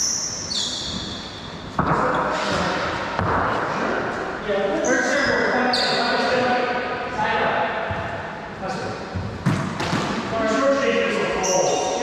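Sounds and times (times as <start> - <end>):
sneakers squeaking on hardwood: 0.0 - 2.8.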